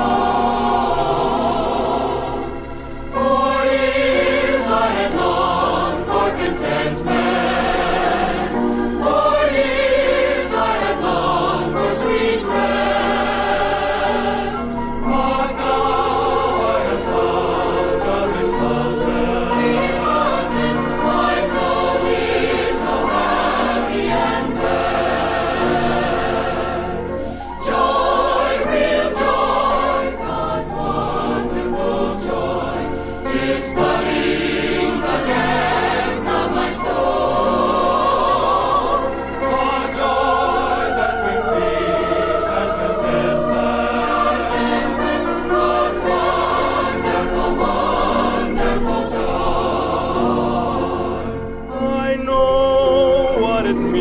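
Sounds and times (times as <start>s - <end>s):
choir singing gospel: 0.0s - 54.0s.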